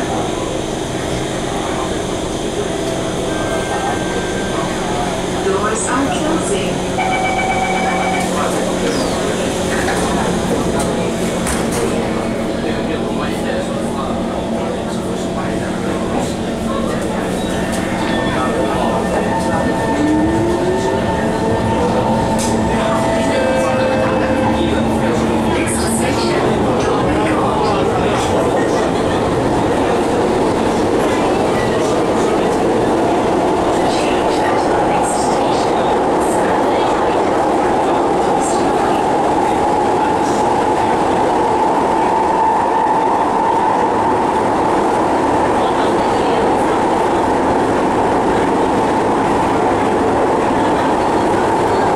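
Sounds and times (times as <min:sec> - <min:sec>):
train car running noise: 0:00.0 - 0:51.9.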